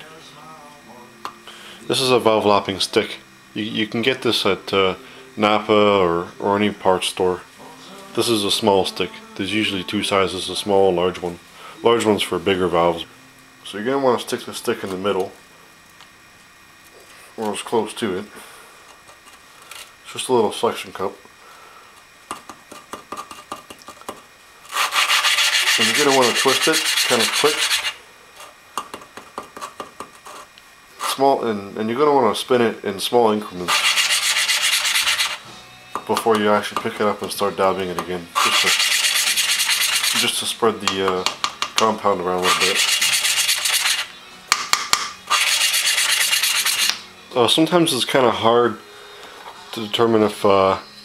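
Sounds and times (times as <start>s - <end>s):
valve grinding against seat: 24.6s - 28.1s.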